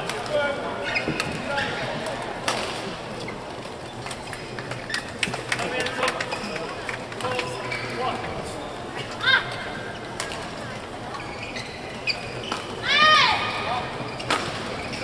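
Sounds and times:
voices echoing in hall: 0.0 - 15.0
shoes squeaking on court: 0.8 - 2.2, 2.8 - 9.2, 9.8 - 15.0
rackets hitting shuttlecock: 14.2 - 14.8.

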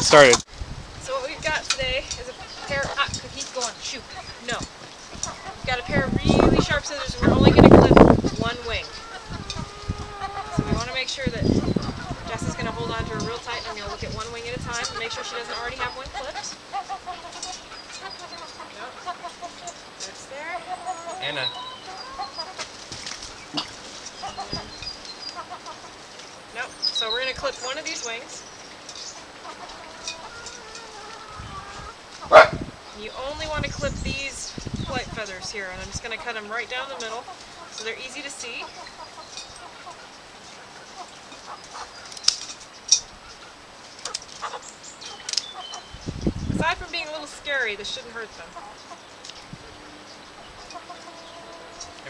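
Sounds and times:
chickens clucking: 1.1 - 52.0
hen making drawn-out calls: 1.2 - 22.8, 23.6 - 28.4, 29.1 - 42.1, 46.6 - 52.0
faint clicks and rustles: 22.5 - 26.6.

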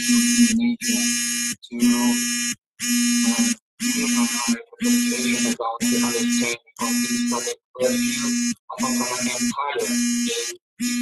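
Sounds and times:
faint garbled speech: 0.0 - 2.2, 3.2 - 11.0
loud electrical buzz: 0.0 - 11.0.

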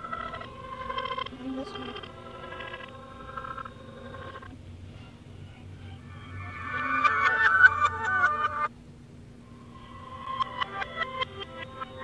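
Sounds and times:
distorted reversed electronic tones: 5.4 - 8.7.

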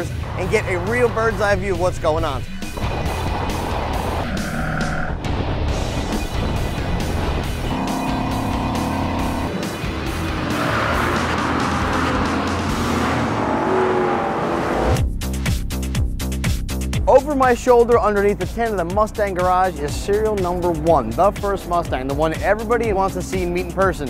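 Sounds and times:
race car engine: 0.0 - 15.0
pitched engine tone: 2.8 - 5.2, 7.6 - 9.5
music with steady beat: 15.0 - 17.6.

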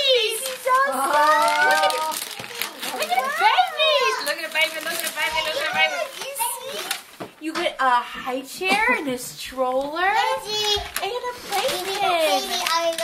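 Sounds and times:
wrapping paper rustling: 0.0 - 7.3, 10.2 - 13.0
excited voices exclaiming: 0.1 - 4.3.

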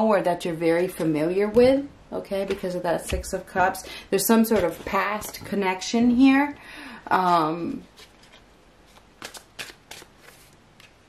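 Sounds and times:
cards flicking and rustling: 7.9 - 11.0.

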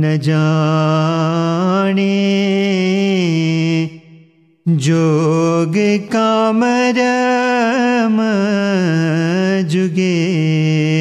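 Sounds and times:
man singing: 0.0 - 11.0.

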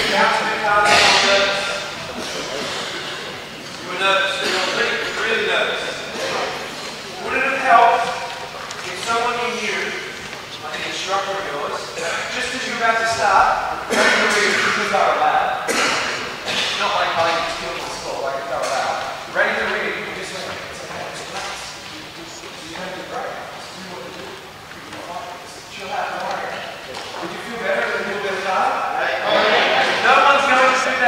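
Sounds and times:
speech in echoing hall: 0.0 - 31.0
sharp knocks: 0.8 - 1.8.

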